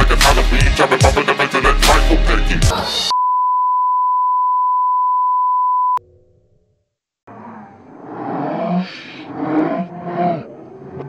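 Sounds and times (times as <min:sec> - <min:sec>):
steady electronic beep: 0:03.1 - 0:06.0.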